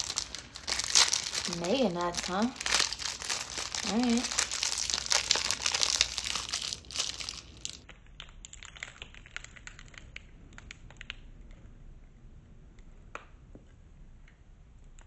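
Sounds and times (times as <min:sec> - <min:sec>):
foil wrapper crinkling and tearing: 0:00.0 - 0:11.2
wrapper crackles and clicks: 0:00.0 - 0:11.6.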